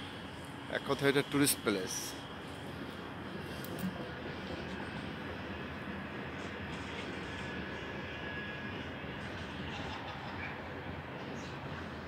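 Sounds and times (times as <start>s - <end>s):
city background hiss and rumble: 0.0s - 12.0s.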